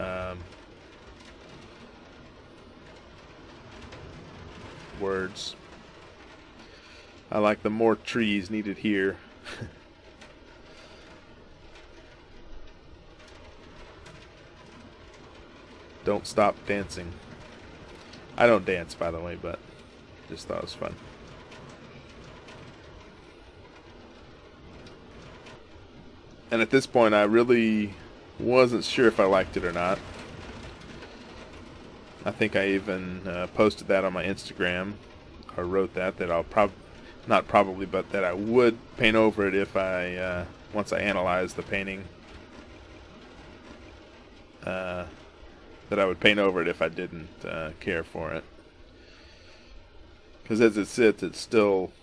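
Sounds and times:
steady rain: 0.0 - 52.0.

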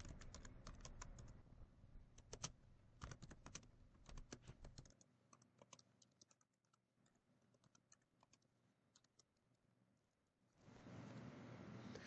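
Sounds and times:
typing on computer keyboard: 0.0 - 1.4, 2.1 - 9.5.

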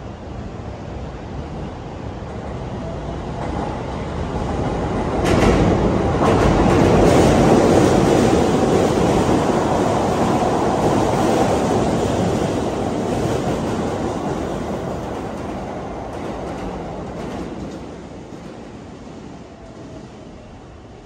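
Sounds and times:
electric train running past: 0.0 - 21.0.

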